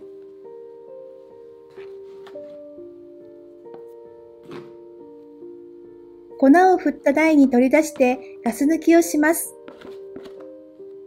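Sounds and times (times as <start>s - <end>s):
gentle piano music: 0.0s - 11.0s.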